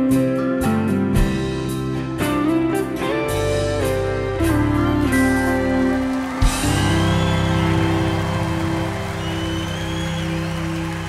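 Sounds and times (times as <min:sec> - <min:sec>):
country band holding chord: 0:03.7 - 0:11.0
audience applauding: 0:04.4 - 0:11.0.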